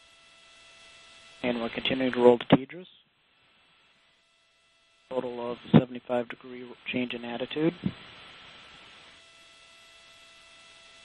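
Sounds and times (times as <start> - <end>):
faint steady hiss: 0.0 - 11.0
light hum: 0.0 - 11.0.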